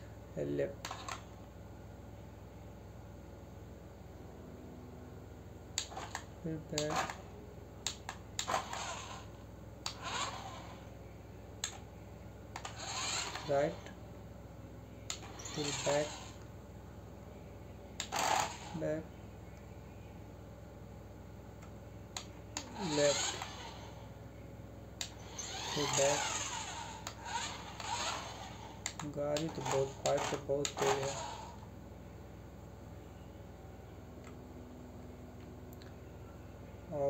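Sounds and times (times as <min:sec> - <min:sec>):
toy car motor whirring: 0:00.8 - 0:01.4, 0:05.8 - 0:10.9, 0:12.5 - 0:14.0, 0:15.1 - 0:16.5, 0:18.0 - 0:19.0, 0:22.2 - 0:24.1, 0:25.0 - 0:31.7
sharp clicks: 0:05.8 - 0:07.2, 0:07.8 - 0:08.7, 0:11.6 - 0:11.8, 0:15.1 - 0:16.0, 0:28.8 - 0:31.2.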